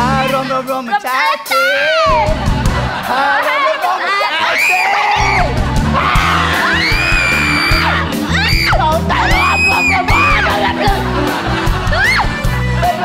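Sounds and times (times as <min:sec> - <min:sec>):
music with bass line: 0:00.0 - 0:00.9, 0:01.9 - 0:03.2, 0:05.2 - 0:13.0
women screaming and yelling: 0:03.3 - 0:11.0, 0:11.8 - 0:12.4.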